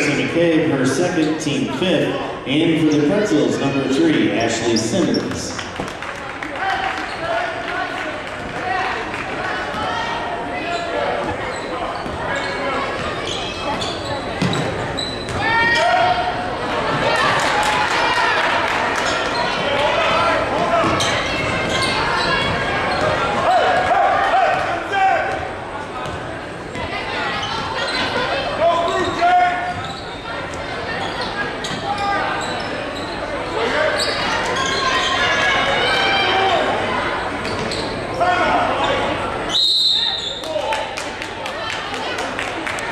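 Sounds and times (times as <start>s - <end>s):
echoing crowd and player voices: 0.0s - 42.9s.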